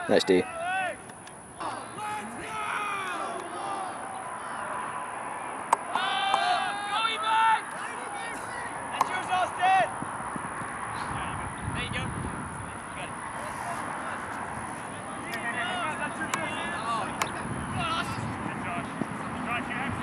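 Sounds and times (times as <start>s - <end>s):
players shouting: 0.0s - 20.0s
sharp smacks: 5.7s - 6.5s.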